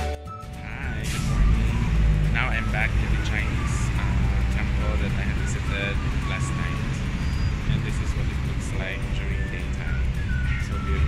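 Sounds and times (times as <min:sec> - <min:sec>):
low rumble of traffic: 0:00.7 - 0:11.0
wavering voice-like calls: 0:09.4 - 0:11.0.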